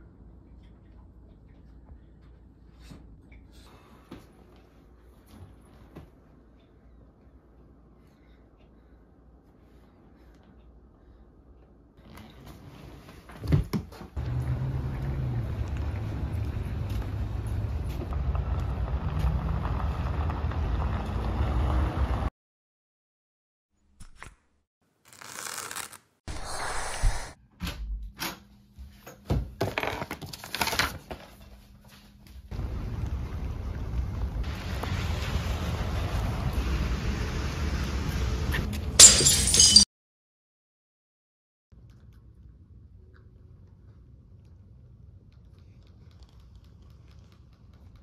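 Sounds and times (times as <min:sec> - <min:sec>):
street traffic rumble: 0:14.2 - 0:22.3, 0:32.6 - 0:39.0.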